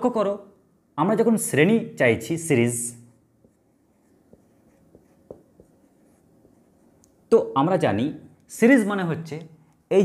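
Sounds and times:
marker writing on whiteboard: 3.1s - 7.3s
marker ticks on whiteboard: 3.4s - 7.2s.

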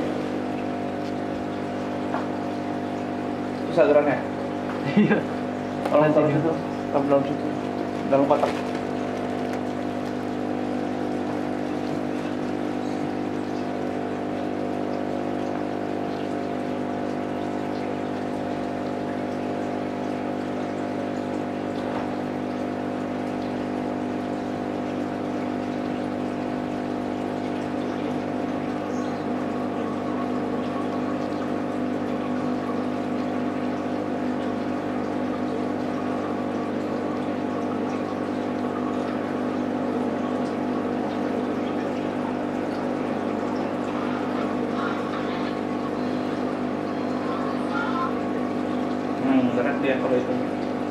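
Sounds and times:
air bubbling in water: 0.0s - 47.3s
air pump hum: 0.0s - 50.9s.

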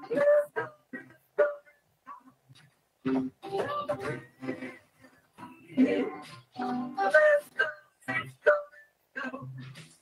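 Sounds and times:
electric guitar: 3.0s - 4.8s.

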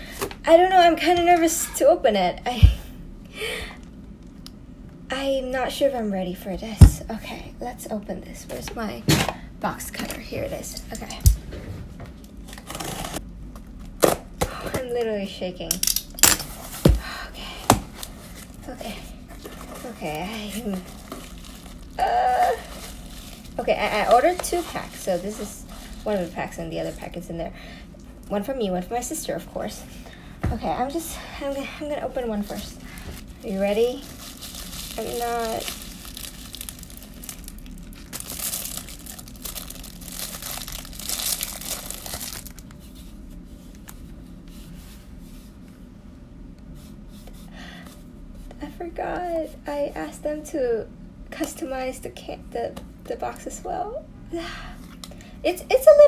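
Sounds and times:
bubble wrap crinkling and tearing: 17.8s - 27.0s, 32.3s - 43.1s.

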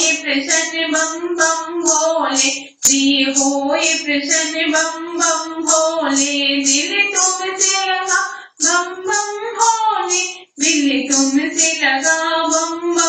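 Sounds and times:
bright ticking beat: 0.0s - 13.0s
high voice singing folk song: 0.0s - 13.0s.

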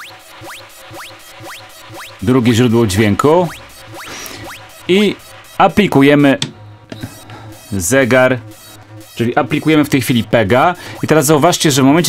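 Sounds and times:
low electronic pulse: 0.0s - 12.0s
rising electronic chirps: 0.0s - 12.0s.

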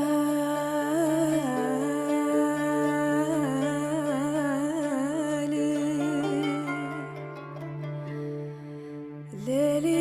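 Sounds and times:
woman singing melismatic vocal line: 0.0s - 10.0s.

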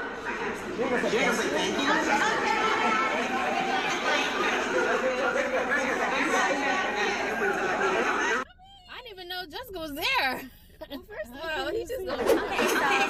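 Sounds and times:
crowd chatter: 0.0s - 8.5s, 11.4s - 13.0s.

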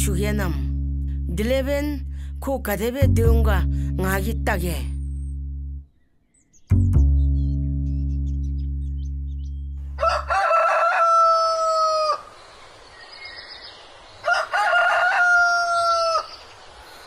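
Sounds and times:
rooster crowing: 9.9s - 12.4s, 14.2s - 16.6s.

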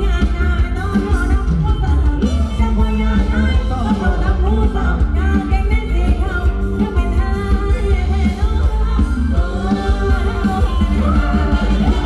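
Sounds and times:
live band dance music: 0.0s - 12.0s
person singing: 0.0s - 12.0s.

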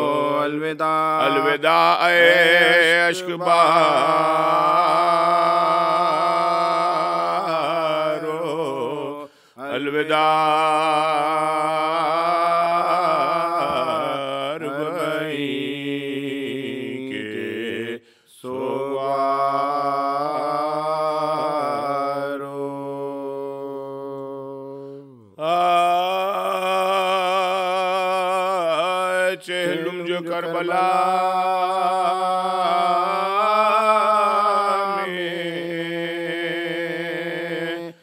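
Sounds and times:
man chanting melodically: 0.0s - 17.9s, 18.6s - 38.0s.

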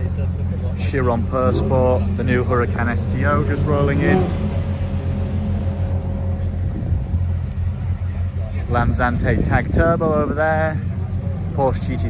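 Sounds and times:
car engine low rumble: 0.0s - 12.0s.

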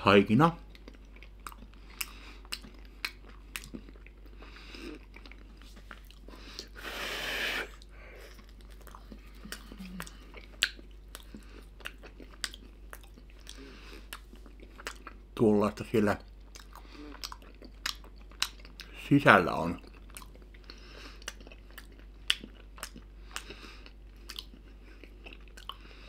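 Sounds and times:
wet chewing and smacking: 0.6s - 6.8s, 7.7s - 15.4s, 16.1s - 26.0s.

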